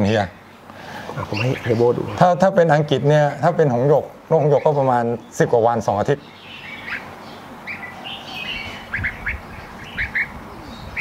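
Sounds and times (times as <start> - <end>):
bulbuls chirping: 0.0 - 11.0.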